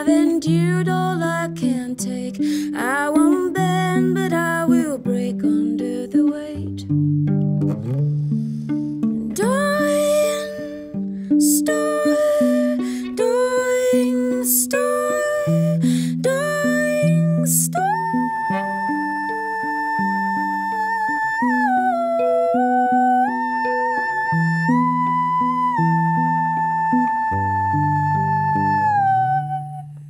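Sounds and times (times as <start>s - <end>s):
electric guitar picking single notes: 0.0s - 30.0s
wordless singing voice: 9.3s - 30.0s.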